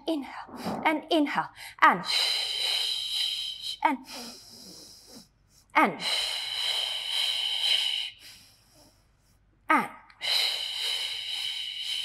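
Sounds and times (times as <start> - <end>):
woman's hissing breaths: 1.6 - 9.4, 10.2 - 12.0.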